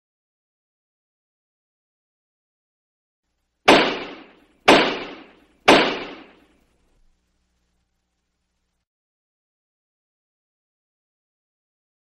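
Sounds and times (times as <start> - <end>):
sharp impact hits: 3.7 - 6.5.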